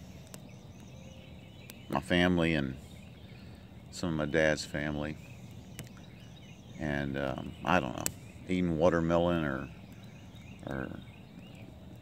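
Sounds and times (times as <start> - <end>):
sharp pops of burning wood: 0.0 - 2.2, 5.2 - 12.0
campfire crackling: 0.0 - 12.0
faint bird chirps: 0.0 - 12.0.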